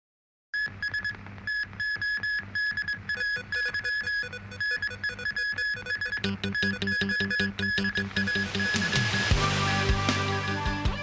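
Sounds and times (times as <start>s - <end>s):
pulsing synthesizer tone: 3.2s - 9.4s
sustained low bass: 6.2s - 10.9s.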